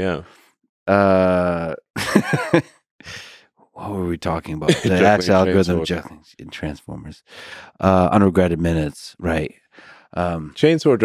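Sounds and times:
man speaking: 0.0 - 0.3, 0.9 - 1.9, 3.1 - 9.5, 10.2 - 11.0
man laughing: 1.1 - 2.8, 4.6 - 5.5
breathy exhale: 3.0 - 3.5, 7.3 - 7.8, 9.7 - 10.1.

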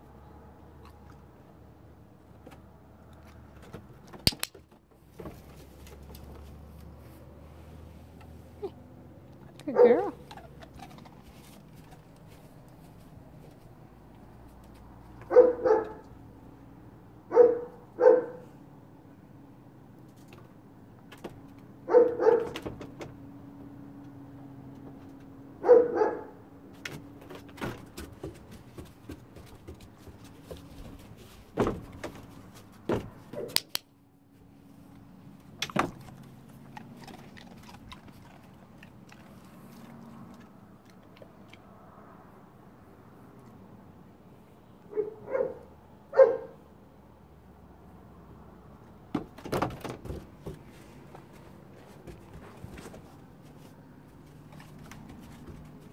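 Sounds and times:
dog barking: 9.6 - 10.2, 15.2 - 16.1, 17.3 - 18.6, 21.8 - 22.6, 25.6 - 26.4, 44.9 - 46.6.

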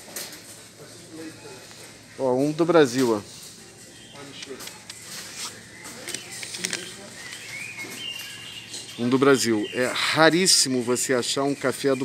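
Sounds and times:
faint background voices: 0.0 - 12.0
coffee bag rustling and crinkling: 4.4 - 8.4.

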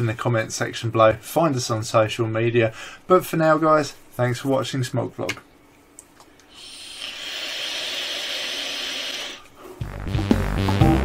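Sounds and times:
hiss of air through vape: 6.5 - 9.8.

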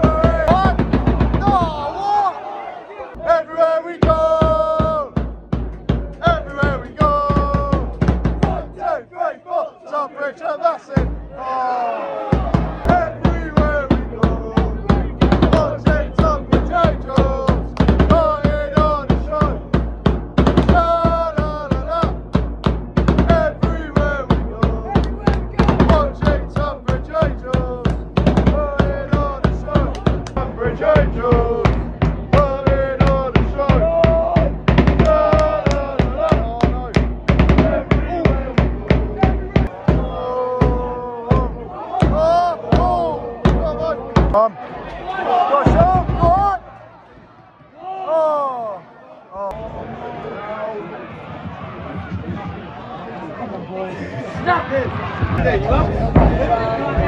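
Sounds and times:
bass drum beat: 0.0 - 2.0, 4.0 - 9.0, 11.0 - 11.6, 12.3 - 44.4, 45.6 - 46.8, 54.4 - 57.0
crowd chanting: 0.0 - 57.0
crowd clapping: 35.0 - 36.7.

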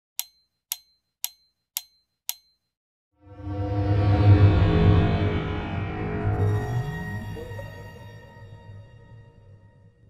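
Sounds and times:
sharp ringing ticks: 0.2 - 2.7.

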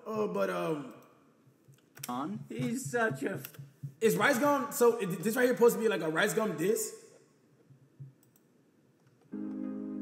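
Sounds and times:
computer mouse clicks: 8.1 - 9.3.

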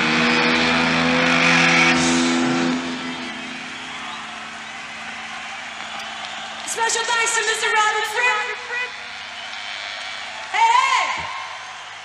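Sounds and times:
distorted electric guitar chord: 0.0 - 5.3.

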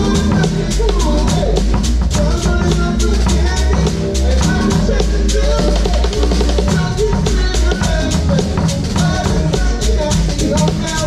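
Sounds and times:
drum kit cymbal and snare: 0.0 - 11.0
funk band playing: 0.0 - 11.0.

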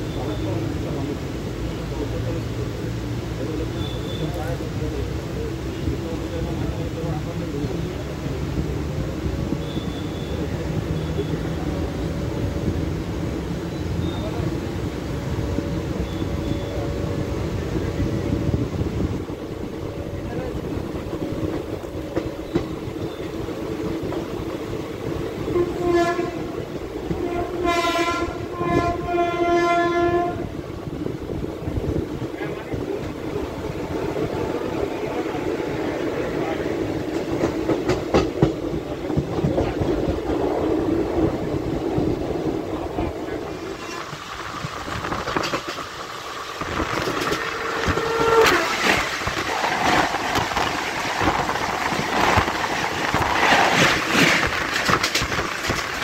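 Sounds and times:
train rushing past: 0.0 - 56.0
train wheels rattling on rails: 0.0 - 56.0
train horn blasts: 25.4 - 30.5, 47.2 - 48.9.

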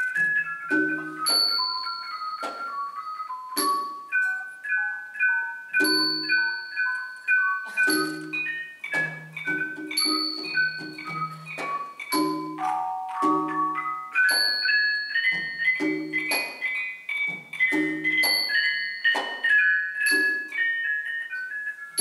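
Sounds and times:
small cymbals ringing: 0.0 - 22.0.

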